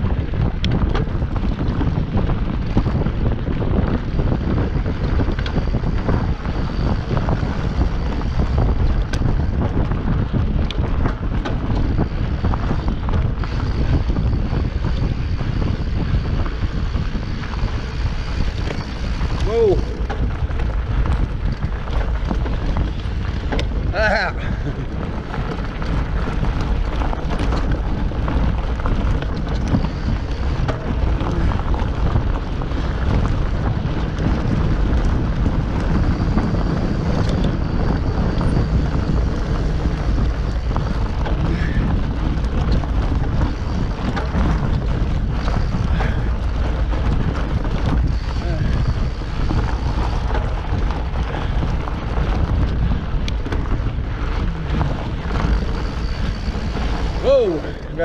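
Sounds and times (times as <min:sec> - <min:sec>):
mountain bike rumbling and rattling: 0:00.0 - 0:58.0
wind buffeting microphone: 0:00.0 - 0:58.0.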